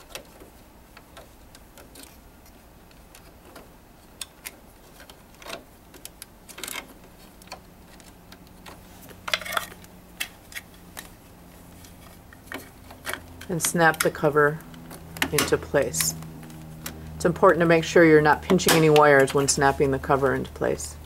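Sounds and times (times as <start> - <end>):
plastic connectors clicking and rattling: 0.0 - 11.2, 11.8 - 17.0.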